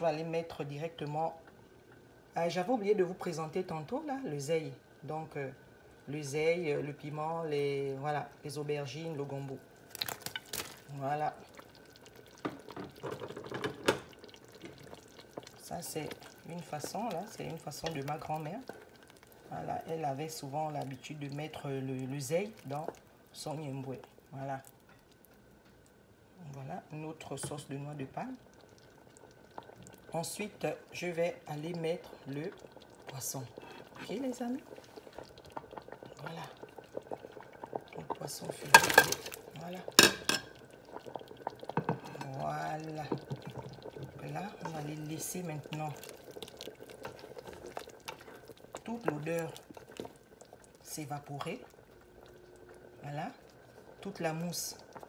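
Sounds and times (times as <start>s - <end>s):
sauce bubbling in pot: 0.0s - 55.0s.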